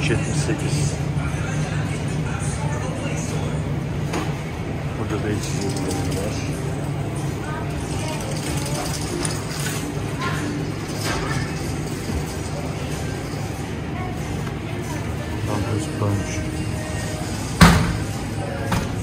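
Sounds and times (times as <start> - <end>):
faint music: 0.0 - 19.0.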